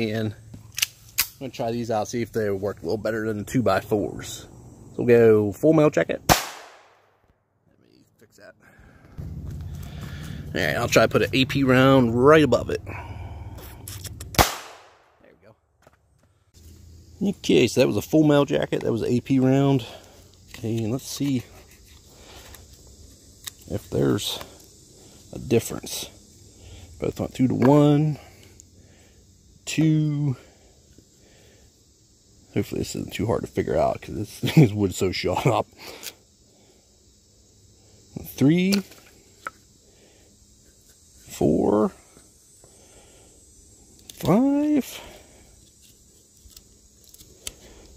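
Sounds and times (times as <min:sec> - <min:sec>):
pistol shot: 0:06.3 - 0:07.1, 0:14.4 - 0:15.1.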